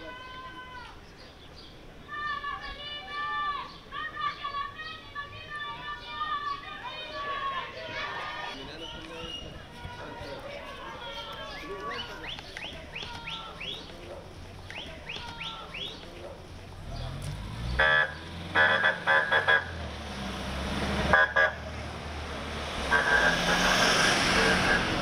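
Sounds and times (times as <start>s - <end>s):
vehicle engine: 13.6s - 25.0s
emergency vehicle horn toots: 17.8s - 19.8s, 21.1s - 21.7s, 22.9s - 25.0s.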